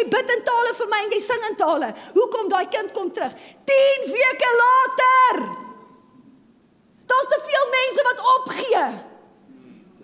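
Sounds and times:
woman's amplified voice: 0.0 - 5.9, 7.1 - 9.3.

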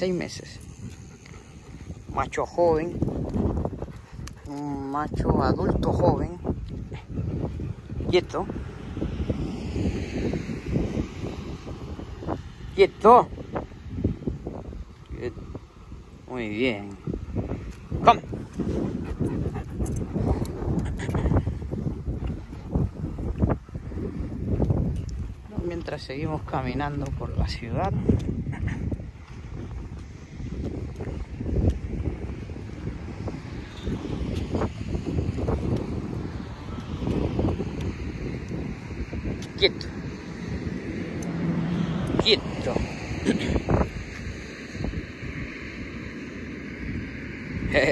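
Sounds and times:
distant traffic: 0.0 - 47.9
wind buffeting microphone: 0.0 - 47.9.

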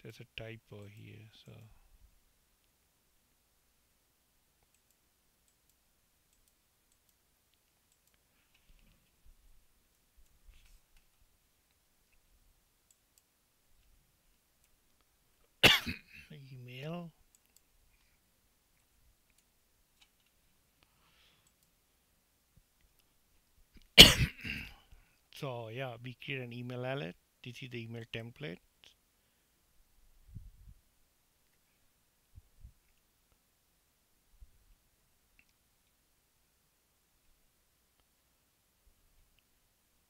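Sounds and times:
computer mouse clicks: 4.6 - 9.2, 17.3 - 18.1, 19.2 - 20.4, 21.4 - 21.8, 35.3 - 36.0
person coughing: 15.6 - 16.4, 24.0 - 24.8.

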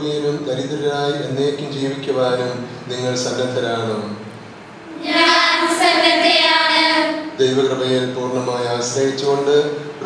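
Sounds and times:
women singing in unison: 4.9 - 7.3.

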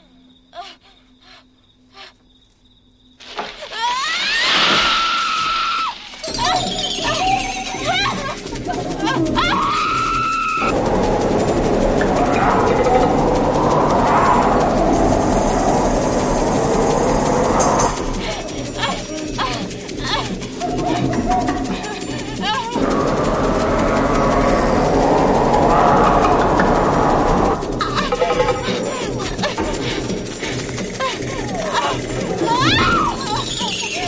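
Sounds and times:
dissonant horror film score: 0.0 - 34.0
woman screaming in terror: 3.7 - 10.8, 31.0 - 34.0.

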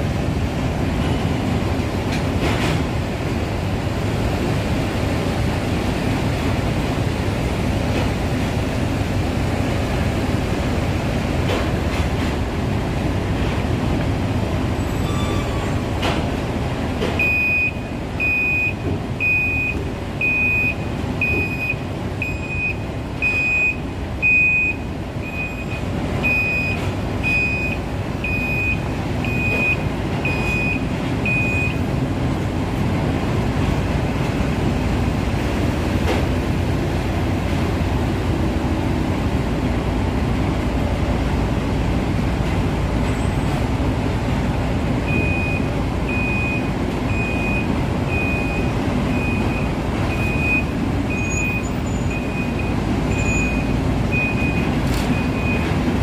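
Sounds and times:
heavy machinery rumble: 0.0 - 56.0
truck reversing alarm beeping: 14.8 - 15.8, 17.1 - 31.9, 45.1 - 55.8.

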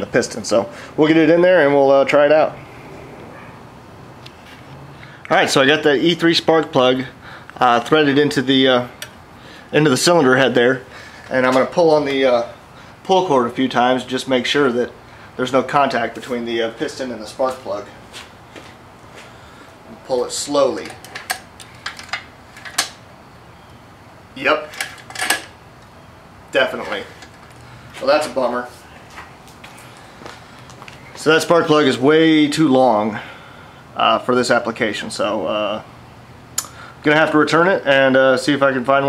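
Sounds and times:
metallic clicks of engine turning: 8.9 - 9.2, 20.8 - 23.0.

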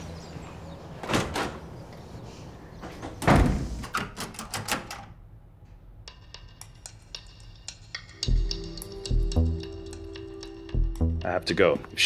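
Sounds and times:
door slamming shut: 1.0 - 1.7, 3.0 - 5.0.

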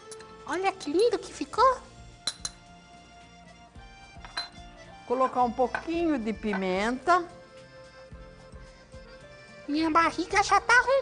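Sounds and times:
soft background music: 0.0 - 11.0
utensil clinking on dishware: 4.2 - 4.6.

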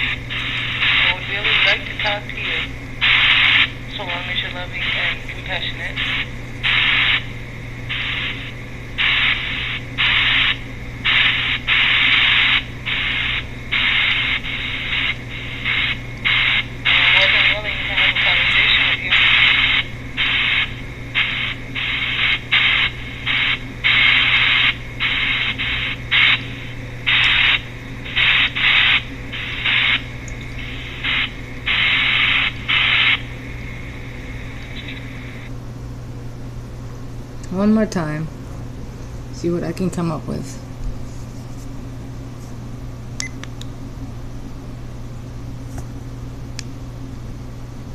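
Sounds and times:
steady low hum: 0.0 - 47.9
chopped pink noise bursts: 7.9 - 35.5.

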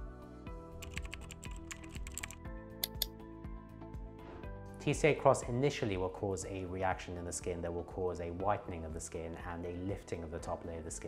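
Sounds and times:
background music: 0.0 - 11.0
keyboard typing clicks: 0.8 - 3.1.

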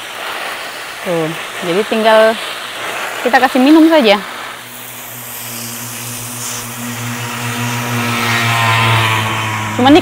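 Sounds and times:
hose nozzle spraying soil: 0.0 - 10.0
low mechanical hum: 4.3 - 10.0.

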